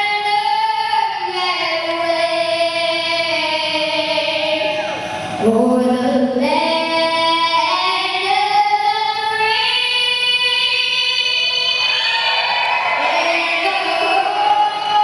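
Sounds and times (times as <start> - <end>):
girl singing into a microphone: 0.0 - 12.0, 13.0 - 15.0.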